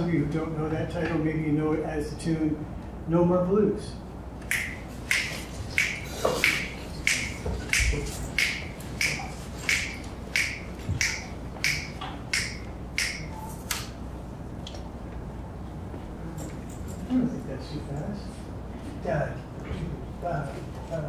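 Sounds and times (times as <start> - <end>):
finger snaps: 4.4 - 13.9.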